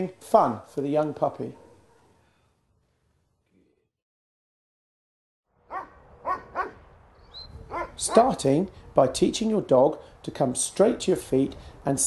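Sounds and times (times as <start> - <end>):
dog yipping: 5.7 - 8.2.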